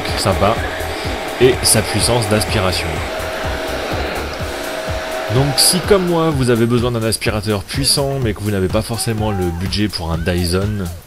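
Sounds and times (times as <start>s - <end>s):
vacuum cleaner running: 0.0s - 7.4s.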